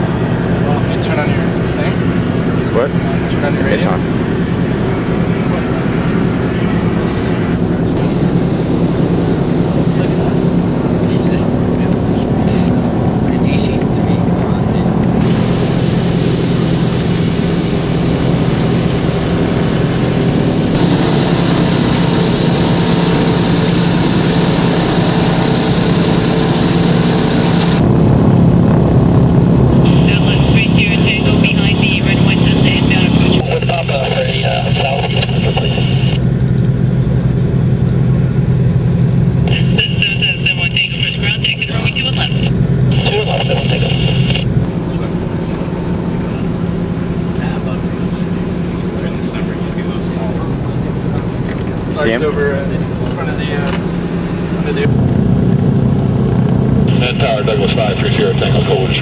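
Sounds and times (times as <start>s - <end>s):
aircraft engines droning: 0.0s - 59.0s.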